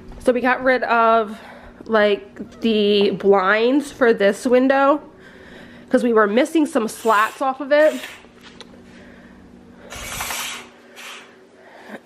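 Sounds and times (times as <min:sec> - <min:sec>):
curtain scraping rustle: 0:09.9 - 0:11.3.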